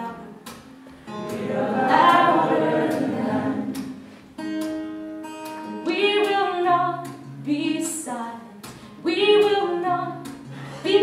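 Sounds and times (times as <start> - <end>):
acoustic guitar: 0.0 - 11.0
woman singing: 1.8 - 3.8, 5.8 - 11.0.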